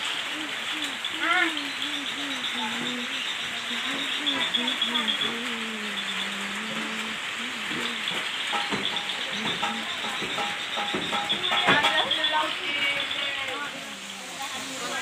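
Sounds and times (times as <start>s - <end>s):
food sizzling in woks: 0.0s - 15.0s
person talking: 0.1s - 8.2s.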